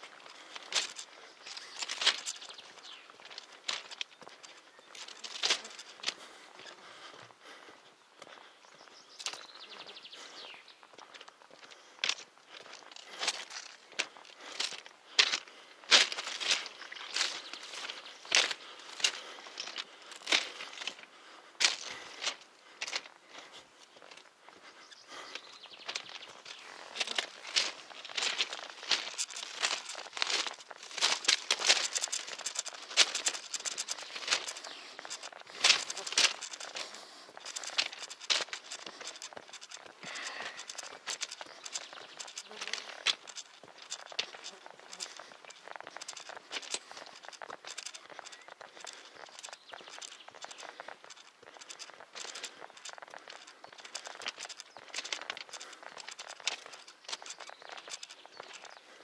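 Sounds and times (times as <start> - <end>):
footsteps crunching on gravel: 0.0 - 59.0.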